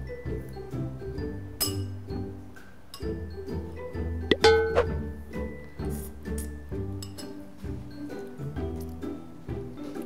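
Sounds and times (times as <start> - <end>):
background music with steady beat: 0.0 - 10.0
cutlery clinking against ceramic bowl: 7.0 - 7.4.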